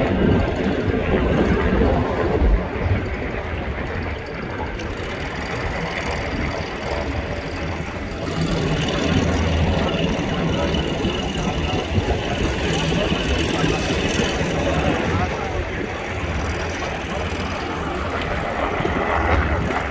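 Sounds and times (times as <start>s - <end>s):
engine running: 0.0s - 19.9s
faint voices: 0.0s - 19.9s.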